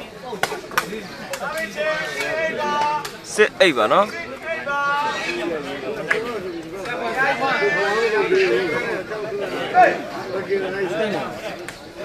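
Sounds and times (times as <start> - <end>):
spectators' voices: 0.0 - 12.0.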